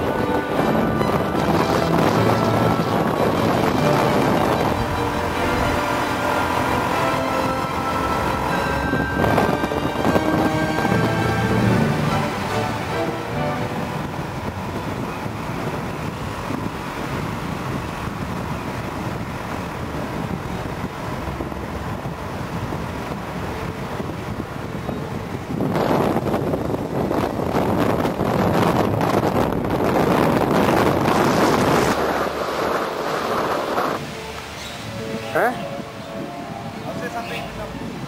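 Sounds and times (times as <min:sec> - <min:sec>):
vehicle road and engine noise: 0:00.0 - 0:38.0
wind on microphone: 0:00.0 - 0:38.0.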